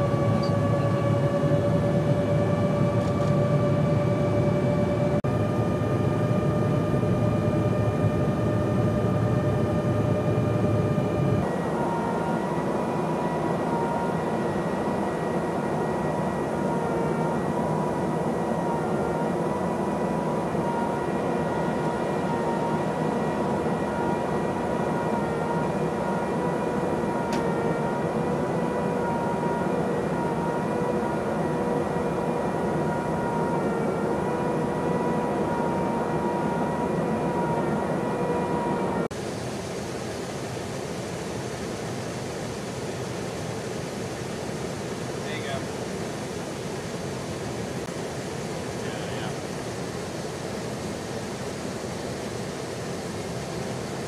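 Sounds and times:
jet engine drone in flight: 0:00.0 - 0:54.0
steady whine: 0:00.0 - 0:54.0.

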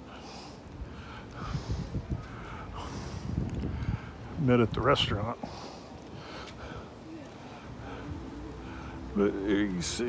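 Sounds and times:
man breathing close to microphone: 0:00.0 - 0:04.4.

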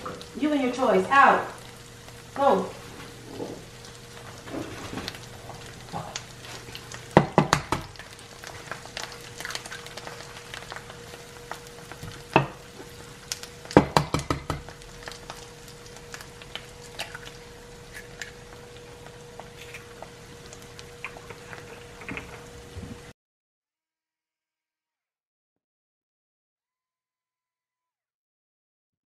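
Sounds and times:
faint steady hum: 0:00.0 - 0:23.1
food sizzling in a frying pan: 0:00.0 - 0:23.1
eggs cracking taps: 0:07.1 - 0:08.1, 0:13.7 - 0:14.8.

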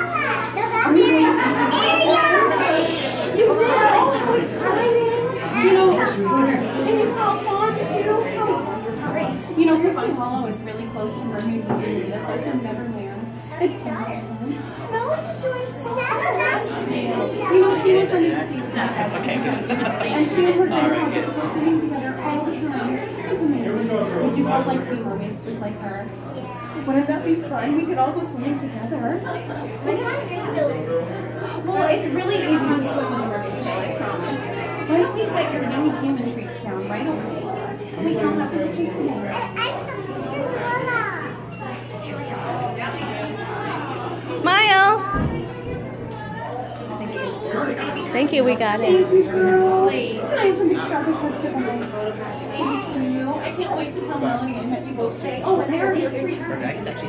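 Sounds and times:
high-pitched child's voice: 0:00.0 - 0:03.0, 0:15.9 - 0:16.6
indistinct chatter of voices: 0:00.0 - 0:57.0
young children talking: 0:00.0 - 0:57.0.

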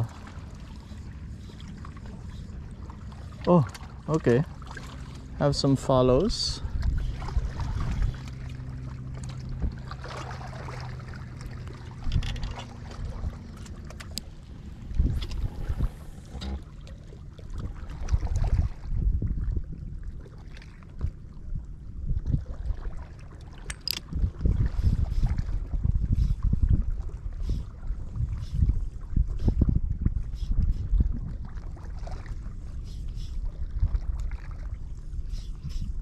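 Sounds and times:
low hum: 0:00.0 - 0:36.0
wind buffeting microphone: 0:05.5 - 0:08.8, 0:09.4 - 0:16.7, 0:17.5 - 0:20.2, 0:20.9 - 0:23.0, 0:23.8 - 0:36.0.

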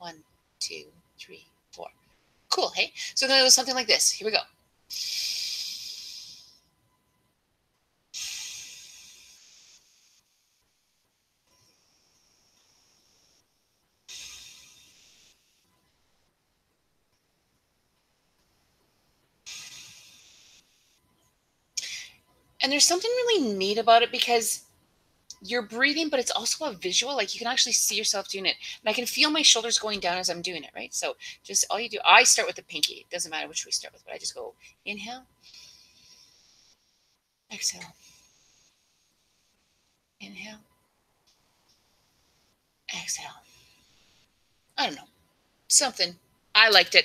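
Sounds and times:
sharp intake of breath: 0:04.9 - 0:06.6, 0:08.2 - 0:09.9, 0:14.1 - 0:15.4, 0:19.5 - 0:20.6
soft hissing exhale: 0:04.9 - 0:06.6, 0:08.2 - 0:10.2, 0:14.1 - 0:15.5, 0:19.5 - 0:20.7, 0:35.4 - 0:36.5.

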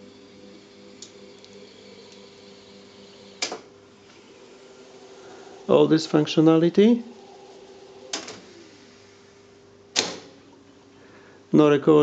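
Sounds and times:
faint steady hum: 0:00.0 - 0:12.0
tape recorder transport clunking: 0:08.1 - 0:08.6.

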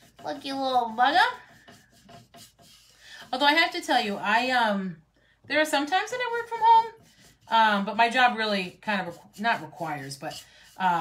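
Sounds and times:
paintbrush scratchy strokes: 0:00.0 - 0:04.4, 0:05.9 - 0:11.0.

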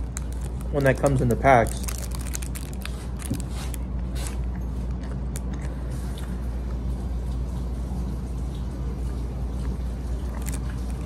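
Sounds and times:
foil wrapper crinkling: 0:00.0 - 0:05.6, 0:10.3 - 0:11.0
chewing ice cream bar: 0:00.0 - 0:07.5, 0:09.1 - 0:11.0
low room hum: 0:00.0 - 0:11.0.

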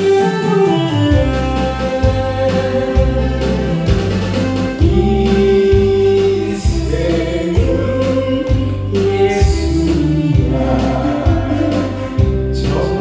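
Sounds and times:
man singing into microphone: 0:00.0 - 0:03.6, 0:04.8 - 0:13.0
karaoke backing track with bass beat: 0:00.0 - 0:13.0.

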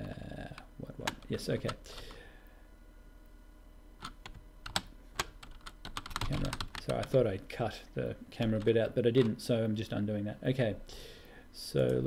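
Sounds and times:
keyboard keystrokes: 0:04.0 - 0:07.1.

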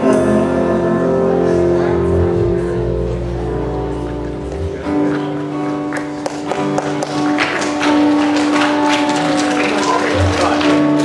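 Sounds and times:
guitars strumming: 0:00.0 - 0:11.0.

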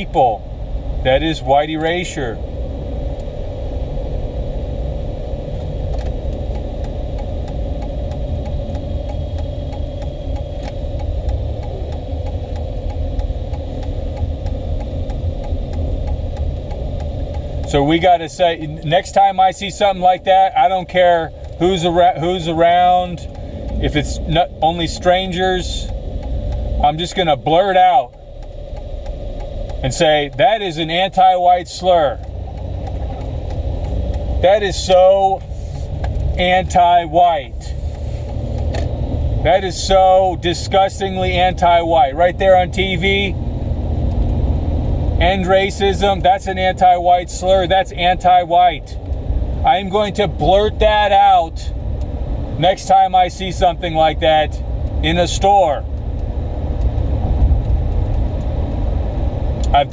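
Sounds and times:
car engine running: 0:00.0 - 0:59.9
faint regular ticks: 0:05.5 - 0:43.3.

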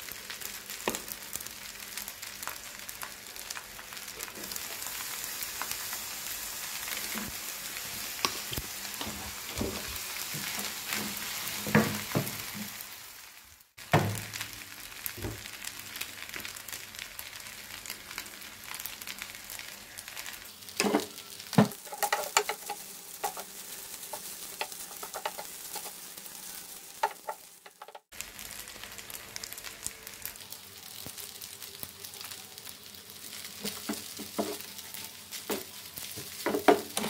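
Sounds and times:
rice sizzling in frying pan: 0:00.0 - 0:37.0.

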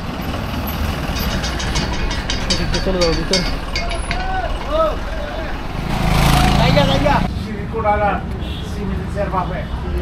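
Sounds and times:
vehicles rumbling past: 0:00.0 - 0:10.0.

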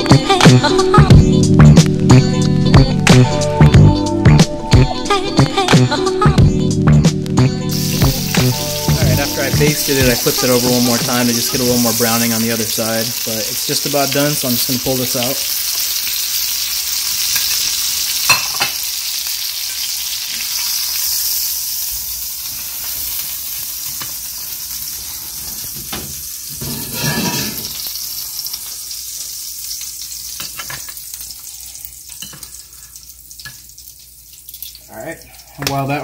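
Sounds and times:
butter sizzling in a skillet: 0:07.2 - 0:36.0.

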